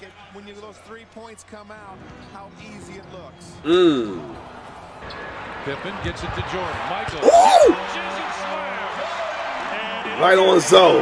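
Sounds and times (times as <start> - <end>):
arena crowd noise: 0.0 - 11.0
person exclaiming: 3.7 - 4.4, 7.2 - 7.8.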